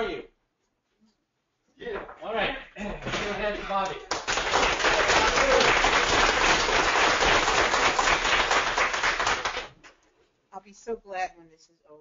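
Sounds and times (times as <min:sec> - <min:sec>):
audience applauding: 0:03.2 - 0:09.8.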